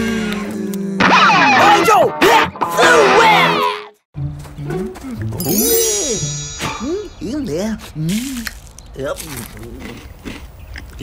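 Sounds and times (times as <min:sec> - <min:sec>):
background music: 0:02.3 - 0:07.3
bright high shimmer: 0:05.4 - 0:07.5.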